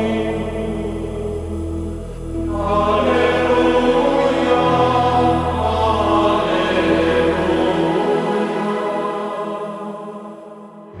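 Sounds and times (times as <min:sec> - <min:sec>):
choir chanting: 0:00.0 - 0:11.0
low steady drone: 0:00.0 - 0:11.0.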